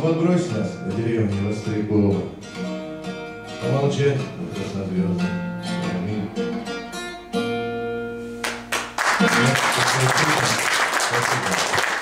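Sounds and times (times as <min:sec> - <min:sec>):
acoustic guitar strumming: 0:00.0 - 0:10.5.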